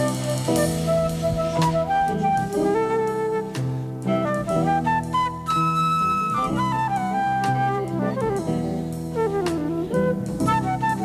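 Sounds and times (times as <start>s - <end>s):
jazzy rock band: 0.0s - 11.0s
wind instrument melody: 0.0s - 11.0s.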